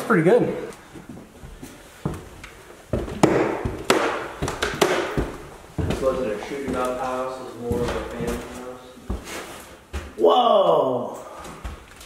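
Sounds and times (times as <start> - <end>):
footsteps on wooden stairs: 0.8 - 10.2, 11.3 - 12.0.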